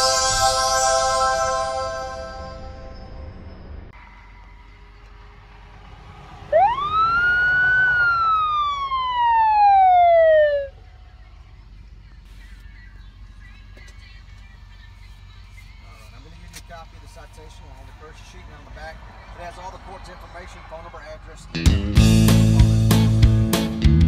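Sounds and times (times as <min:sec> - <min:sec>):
police siren wail: 0:06.4 - 0:10.9.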